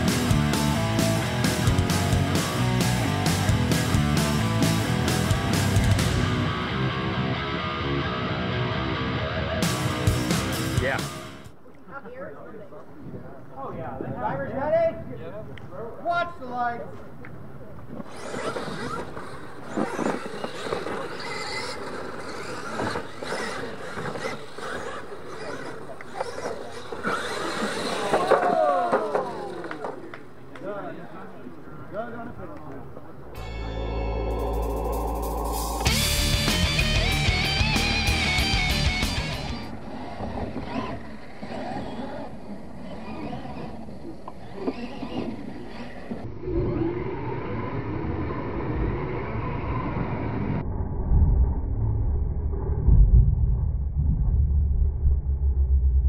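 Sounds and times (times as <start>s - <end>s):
music with regular beat: 0.0s - 6.3s, 33.4s - 39.6s
toy truck motors whining: 17.9s - 30.2s, 37.9s - 49.8s.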